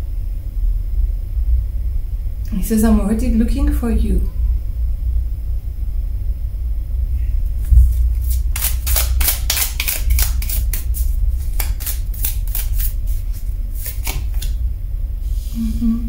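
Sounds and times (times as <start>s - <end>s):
steady low rumble: 0.0s - 16.0s
cards shuffling with sharp snaps: 7.6s - 14.6s.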